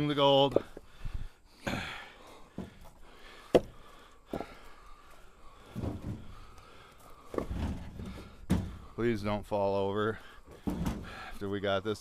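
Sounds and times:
dull thuds of logs: 0.4s - 9.0s, 10.4s - 11.4s
wooden knocks of logs striking: 2.5s - 4.7s, 5.6s - 9.0s, 10.5s - 11.3s.

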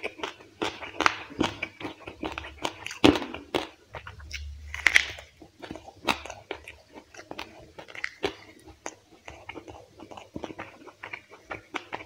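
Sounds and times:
person crunching and chewing food: 0.0s - 12.0s.

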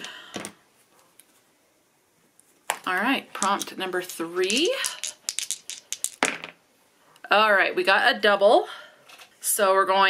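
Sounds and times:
dice clacking into a tray: 2.7s - 6.6s
plastic dice shaken in hand: 2.9s - 6.4s.

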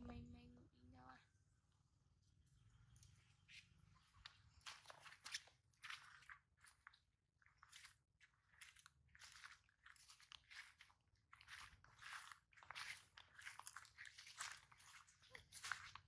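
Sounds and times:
footsteps on grass: 7.6s - 16.0s.

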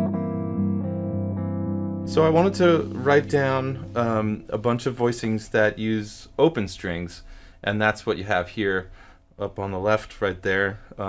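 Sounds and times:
electric guitar chord ringing: 0.0s - 5.0s.

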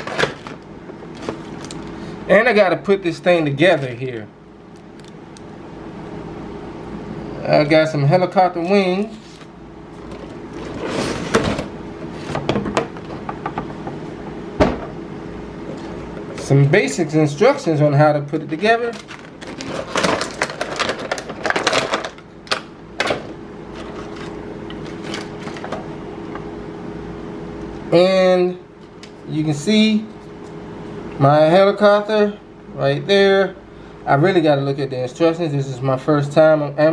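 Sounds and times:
mechanical hum with hiss: 0.0s - 36.9s
plastic tray crackling: 18.5s - 22.6s.

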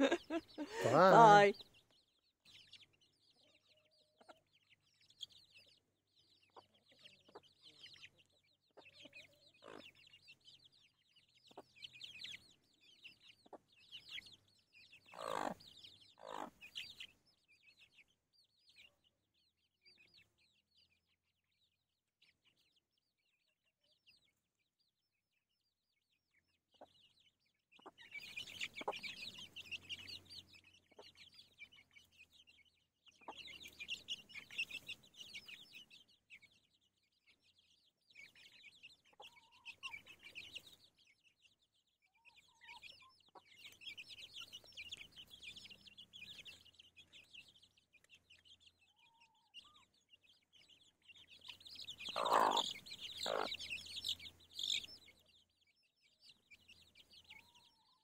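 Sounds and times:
hen calling: 0.0s - 1.6s, 52.0s - 53.8s
chicks peeping: 0.0s - 58.0s.

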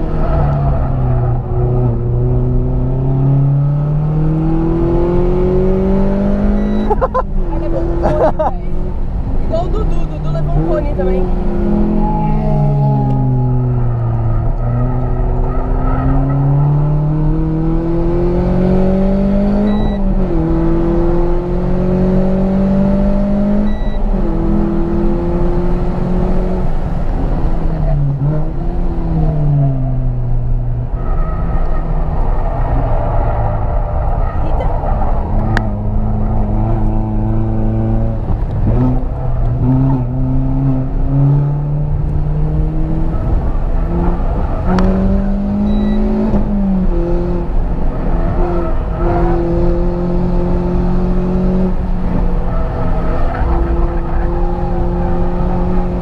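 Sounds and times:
car engine revving: 0.0s - 56.0s
road and tyre rumble: 0.0s - 56.0s.

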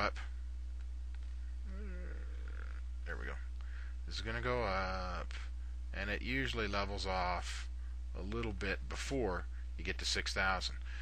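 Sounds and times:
low electrical hum: 0.0s - 11.0s
man humming: 1.7s - 2.8s.

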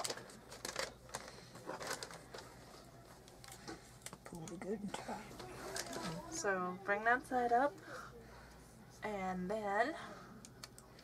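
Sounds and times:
wrapping paper rustling and crinkling: 0.0s - 4.2s, 5.3s - 6.4s.

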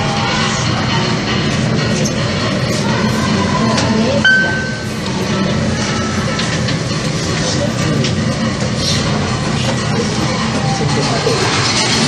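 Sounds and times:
elevator car rumble: 0.0s - 12.0s
short electronic beep: 4.2s - 4.9s.

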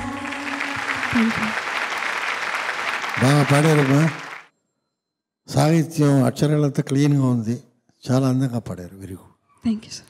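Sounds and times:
audience applauding: 0.0s - 4.5s.

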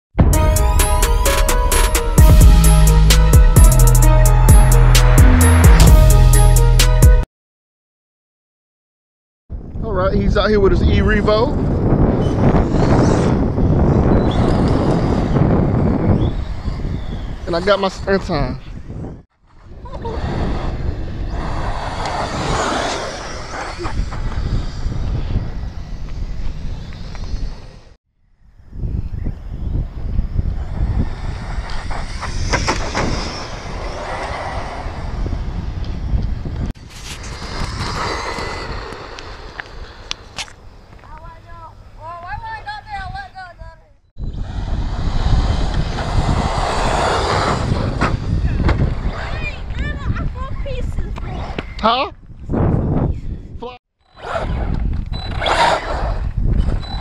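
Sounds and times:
wind buffeting microphone: 9.5s - 57.0s
tyres on asphalt: 21.0s - 24.9s, 30.6s - 42.4s.

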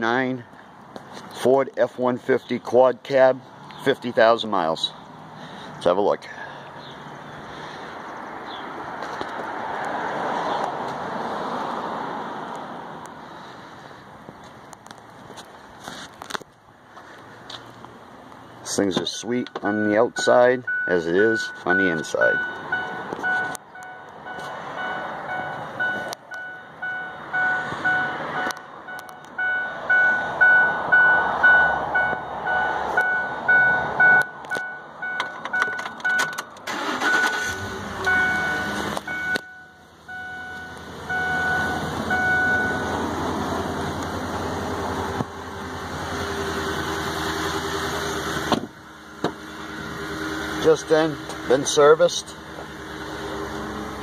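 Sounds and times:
car engine starting and idling: 16.2s - 54.0s
car warning chime dinging: 19.5s - 43.0s.

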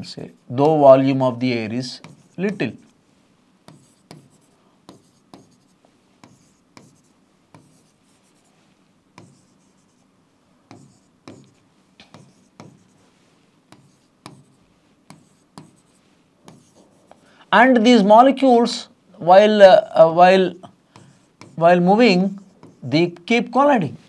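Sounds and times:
chalk tapping and scraping on blackboard: 1.8s - 3.0s, 3.6s - 10.1s, 10.7s - 17.2s, 20.6s - 23.1s.

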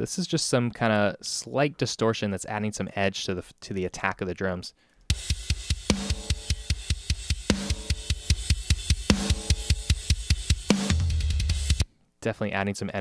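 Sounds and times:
double-kick bass drum: 5.1s - 11.8s.

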